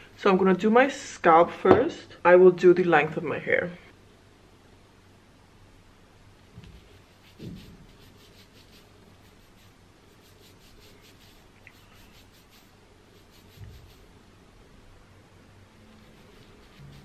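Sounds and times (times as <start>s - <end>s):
fingertips scratching wet hair: 6.8s - 14.0s.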